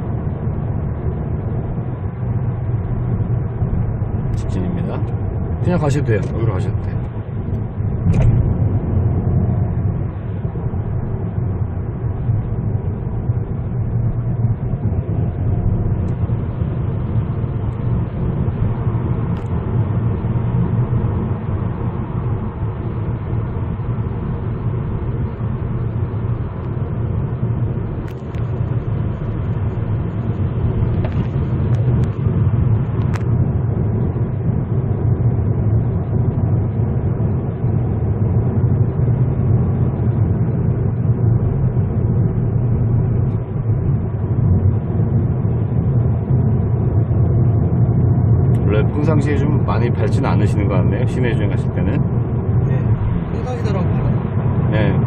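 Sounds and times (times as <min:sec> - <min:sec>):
road and engine rumble in car: 0:00.0 - 0:55.0.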